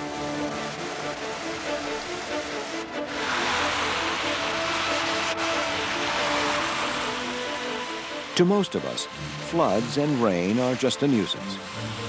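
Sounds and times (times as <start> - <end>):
background music with held notes: 0.0 - 12.0
water spray splashing: 0.4 - 11.0.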